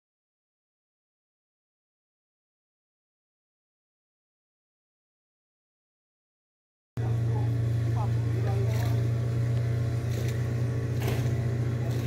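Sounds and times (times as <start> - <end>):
engine humming steadily: 7.0 - 12.0
faint voices: 7.0 - 12.0.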